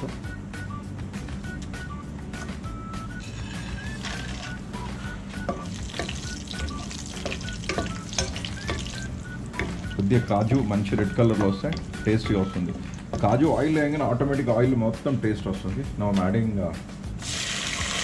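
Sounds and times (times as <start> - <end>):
background music: 0.0 - 18.0
spices sizzling in hot oil: 3.2 - 13.7, 17.2 - 18.0
spatula stirring and tapping pan: 3.3 - 13.7.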